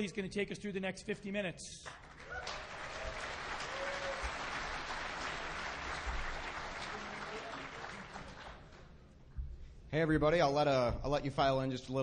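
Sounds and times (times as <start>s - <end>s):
audience applause: 1.9s - 8.8s.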